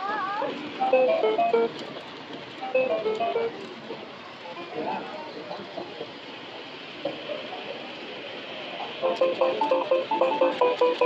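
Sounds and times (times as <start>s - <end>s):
faint music: 0.0s - 6.2s, 7.2s - 11.0s
chatter of people: 2.6s - 11.0s.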